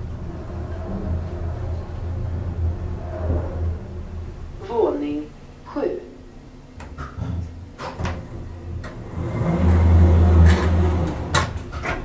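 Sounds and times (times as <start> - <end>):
elevator motor hum: 0.0 - 12.0
relay and door clicks: 7.8 - 12.0.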